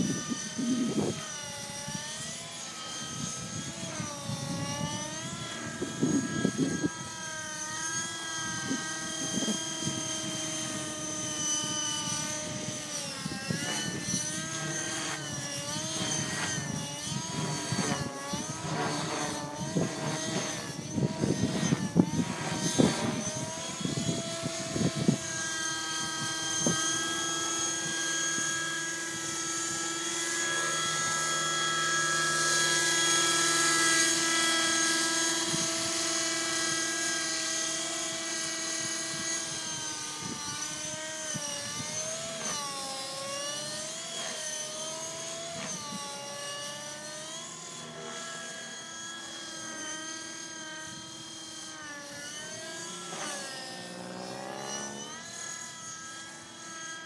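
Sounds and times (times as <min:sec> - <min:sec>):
model helicopter engine whine: 0:00.0 - 0:57.0.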